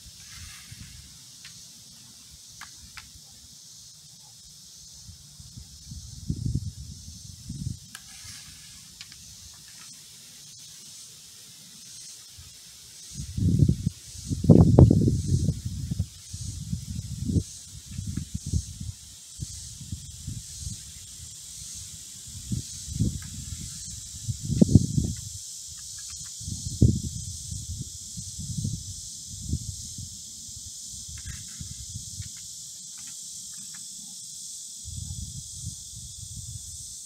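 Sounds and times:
high-pitched insect chorus: 0.0 - 37.0
wind rumbling on microphone: 5.0 - 8.6, 13.1 - 32.3, 34.8 - 37.0.

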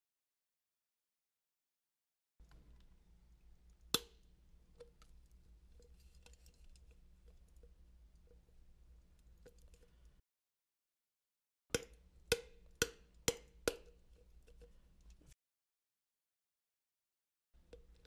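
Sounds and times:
low steady hum: 2.4 - 10.2.

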